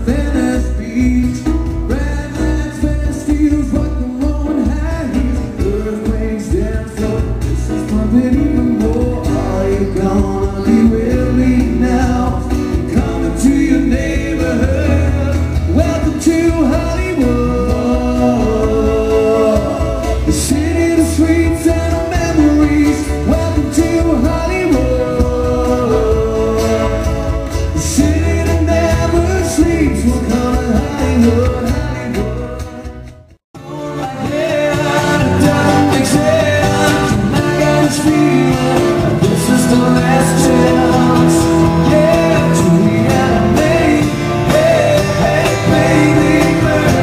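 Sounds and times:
acoustic guitar: 0.0 - 47.0
bass: 0.0 - 47.0
man singing: 0.0 - 47.0
pulsing bass line: 34.8 - 47.0.

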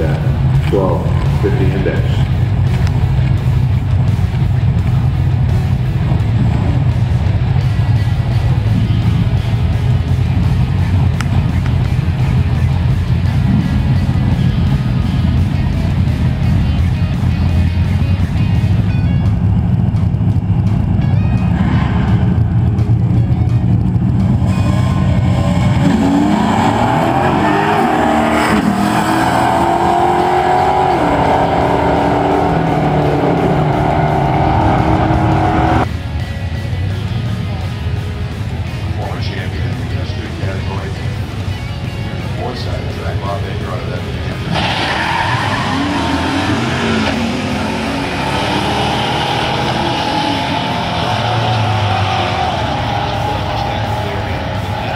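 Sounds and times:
drag race car engines revving: 0.0 - 36.0, 36.6 - 54.9.

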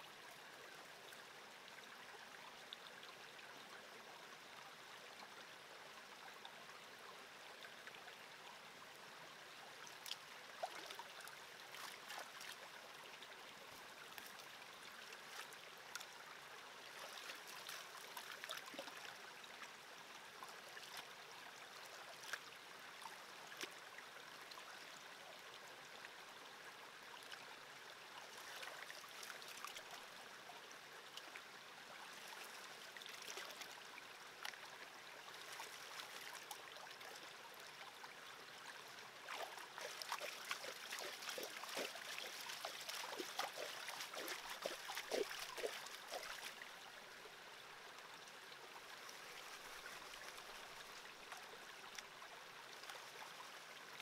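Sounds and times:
creek running over rocks: 0.0 - 54.0.

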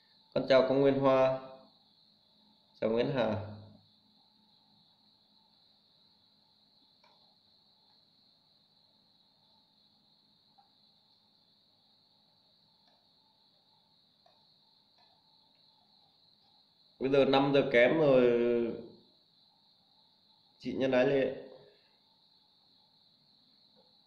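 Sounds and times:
crickets trilling: 0.0 - 24.0
faint clicks: 7.0 - 7.3, 12.8 - 13.1.

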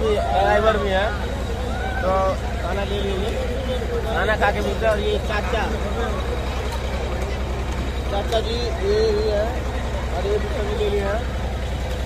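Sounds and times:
faint background chatter: 0.0 - 12.0
low mechanical drone: 0.0 - 12.0.

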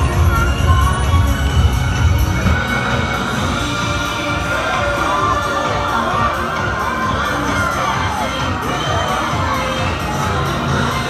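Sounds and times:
crowd shouting and cheering: 0.0 - 11.0
parade music: 0.0 - 11.0
children's voices: 3.3 - 11.0.

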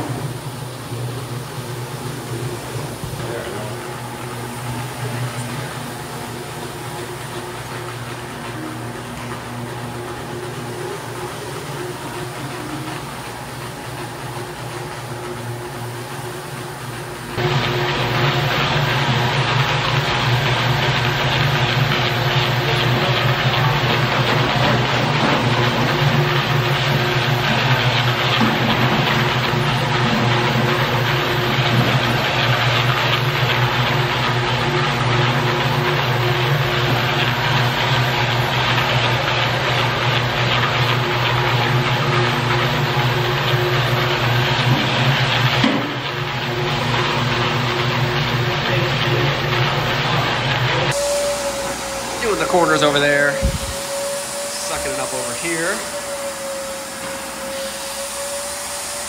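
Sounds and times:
floor machine motor humming: 0.0 - 59.0
pad scrubbing wet floor: 17.3 - 59.0.

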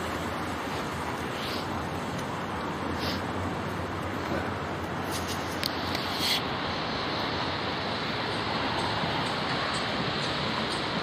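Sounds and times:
road traffic rushing: 0.0 - 11.0.

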